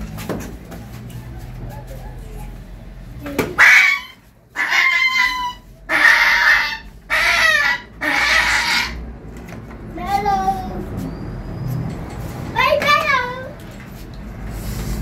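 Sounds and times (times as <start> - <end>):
puppy yelping: 1.1 - 2.6, 3.6 - 9.0.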